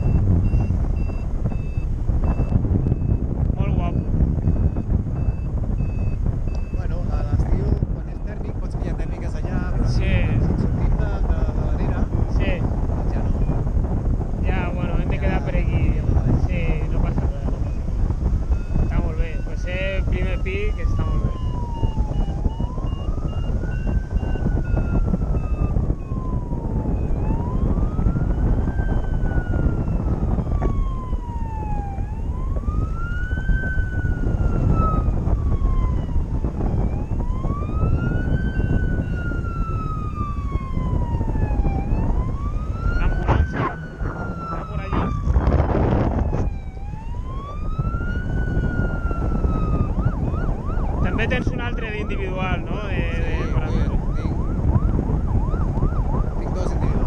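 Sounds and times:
siren wailing: 0.0s - 57.0s
wind rushing on microphone: 0.0s - 57.0s.

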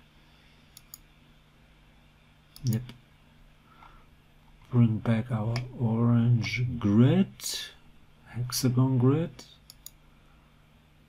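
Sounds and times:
computer mouse clicks: 0.7s - 1.1s, 2.6s - 2.9s, 9.6s - 10.0s.

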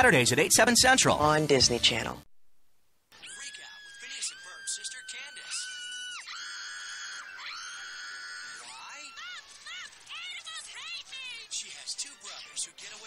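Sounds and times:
cartoon girl screaming: 3.2s - 11.5s.

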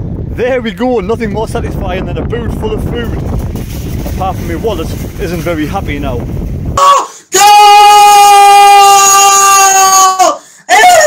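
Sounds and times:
man shouting in celebration: 6.8s - 11.0s.

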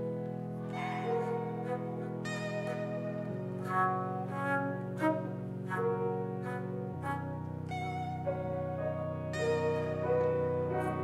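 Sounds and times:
slow synth keyboard music: 0.0s - 11.0s.

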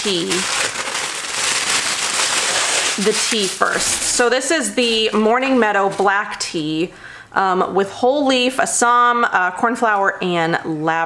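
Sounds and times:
packaging crinkling: 0.0s - 4.4s.

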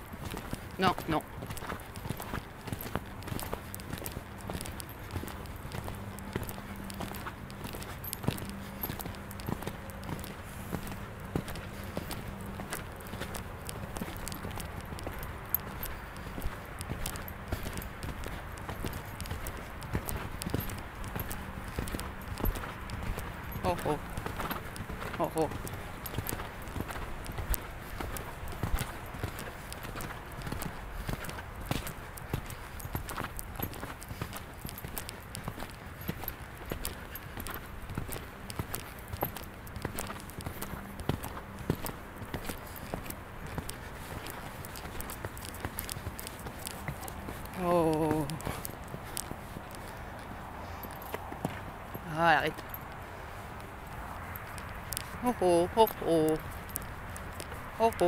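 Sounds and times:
horse hooves beating: 0.0s - 58.0s
person calling to horse: 0.8s - 1.3s, 23.6s - 24.1s, 25.2s - 25.6s, 47.5s - 48.4s, 52.0s - 52.6s, 55.2s - 56.4s, 57.8s - 58.0s.

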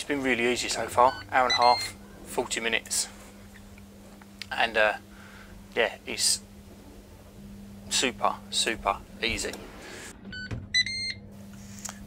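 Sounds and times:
control panel beeping: 1.0s - 2.0s, 10.3s - 11.3s.

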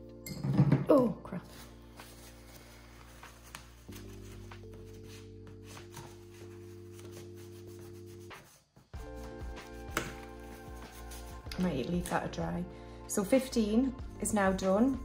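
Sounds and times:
background music chords: 0.0s - 15.0s
scratchy rubbing on paper: 1.6s - 11.5s.

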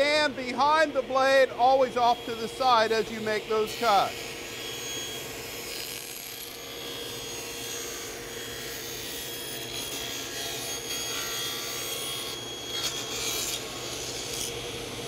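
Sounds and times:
table saw cutting wood: 0.0s - 15.0s.

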